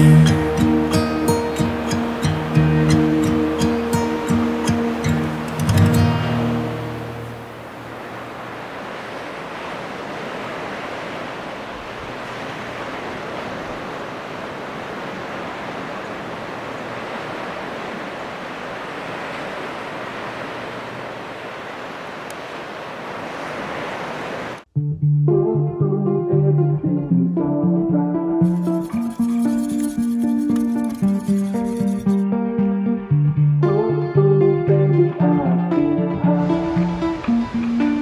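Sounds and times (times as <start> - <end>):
background music: 0.0 - 7.4, 24.8 - 38.0
guitar music: 0.0 - 7.6, 24.8 - 38.0
ocean surf breaking: 0.0 - 24.7, 28.4 - 32.2, 35.8 - 38.0.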